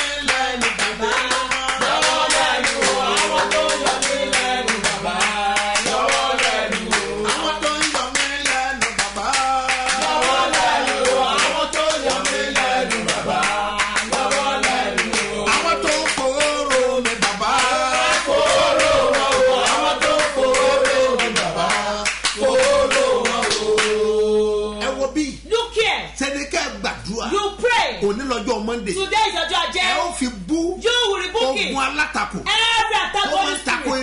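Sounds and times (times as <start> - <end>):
man singing: 0.0 - 2.0, 2.8 - 10.1, 15.2 - 18.3
hand clapping: 0.0 - 24.0
person singing worship song: 0.0 - 25.0.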